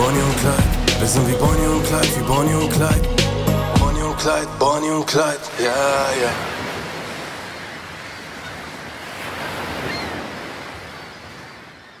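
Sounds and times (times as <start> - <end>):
sea surf washing: 0.0 - 11.8.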